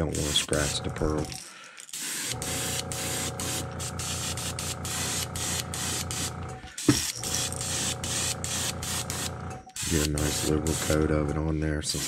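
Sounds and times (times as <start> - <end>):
airbrush spraying in bursts: 0.0 - 0.9, 1.9 - 11.2.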